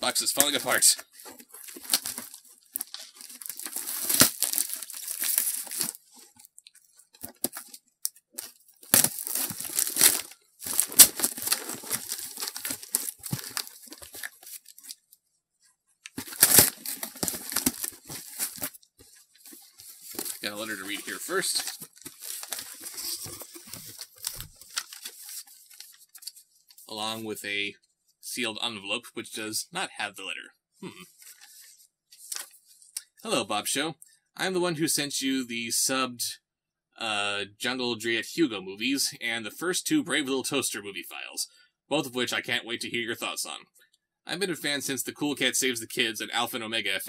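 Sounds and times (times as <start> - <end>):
packing crinkling: 0.3 - 15.1, 16.0 - 26.4
cardboard box tearing: 1.6 - 6.0, 8.8 - 14.9, 16.2 - 18.7, 19.9 - 25.5.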